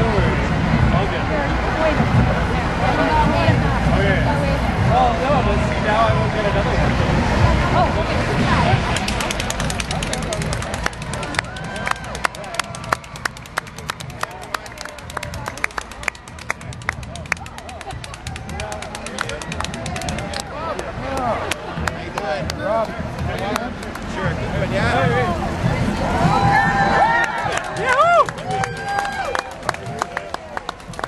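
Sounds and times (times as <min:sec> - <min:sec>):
crowd voices: 0:00.0 - 0:31.0
spectators clapping: 0:08.7 - 0:31.0.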